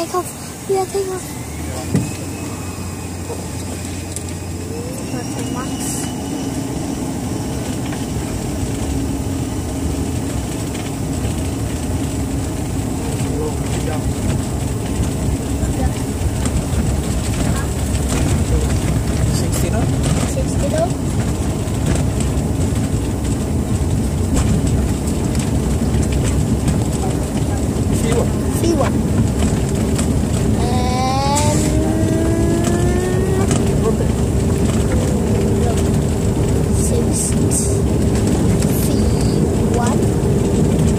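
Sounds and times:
jet engines at takeoff: 0.0 - 40.9
wheels rumbling on runway: 0.0 - 40.9.

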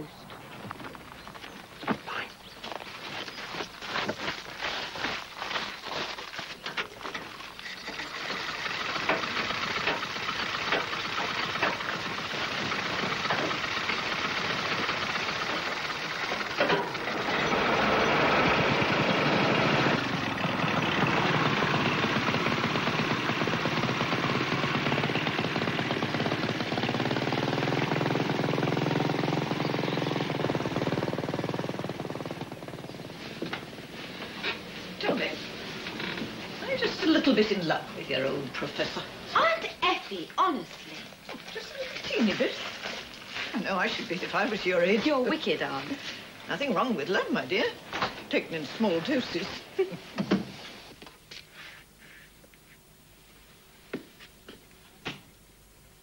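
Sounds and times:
motorcycle engine running: 6.8 - 39.2
car engine running: 7.8 - 39.3.

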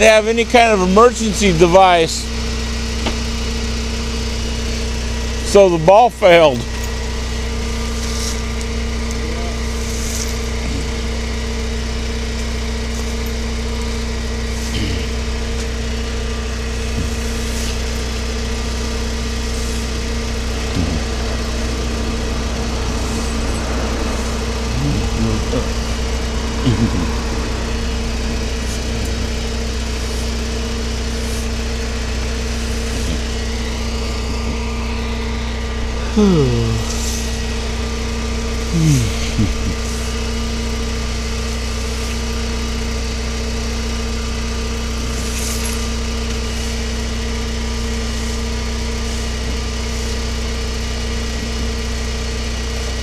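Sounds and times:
truck engine idling: 0.0 - 53.0.

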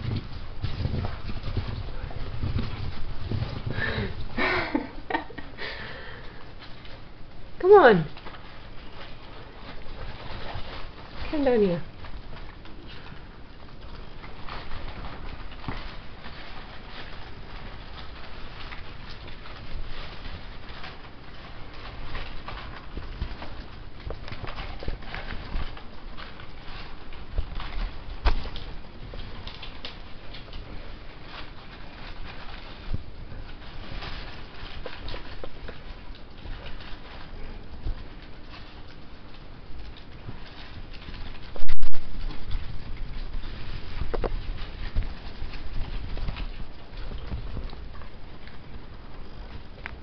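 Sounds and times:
rats scurrying on fabric: 0.0 - 50.0.

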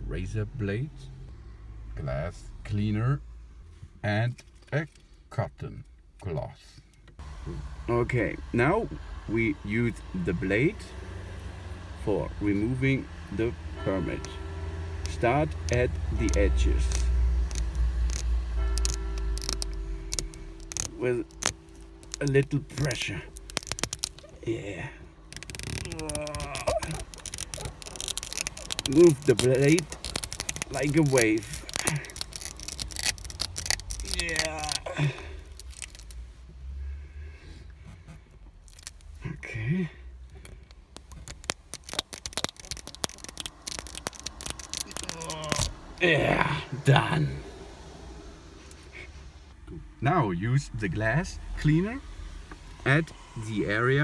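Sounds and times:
steady low rumble: 11.8 - 54.0
steady tones: 13.2 - 36.2
razor blade scraping glass: 15.0 - 24.4, 25.3 - 34.5.

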